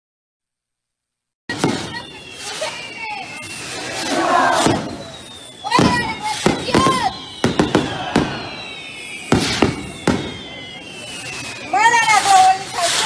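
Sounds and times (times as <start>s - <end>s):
fireworks bangs: 1.5s - 13.0s
fireworks whistles falling in pitch: 1.5s - 13.0s
crowd shouting and cheering: 2.7s - 9.4s.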